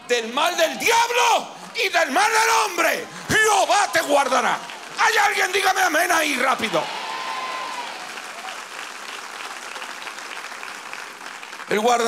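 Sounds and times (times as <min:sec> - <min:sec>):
congregation applauding: 0:00.0 - 0:12.0.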